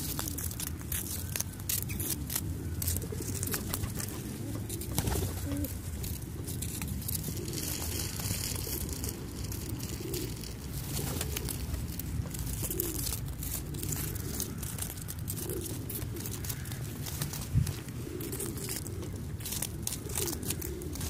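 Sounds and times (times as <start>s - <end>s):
pigeons cooing: 0.0s - 21.0s.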